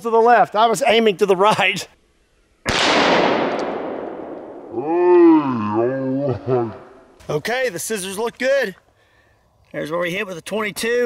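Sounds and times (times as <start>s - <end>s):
gunshot: 2.6s - 4.7s.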